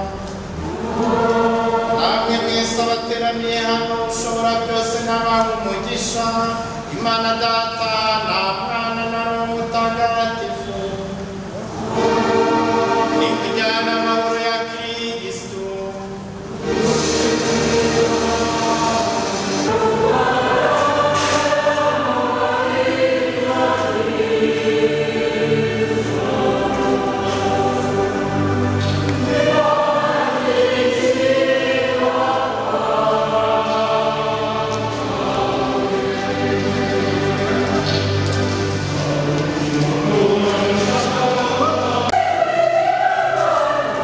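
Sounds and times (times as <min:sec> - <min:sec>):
choir singing in harmony: 0:00.0 - 0:44.0.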